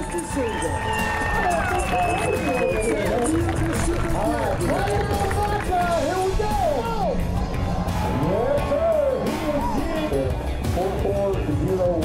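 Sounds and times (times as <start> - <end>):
crowd noise: 0.0 - 12.0
music: 0.0 - 12.0.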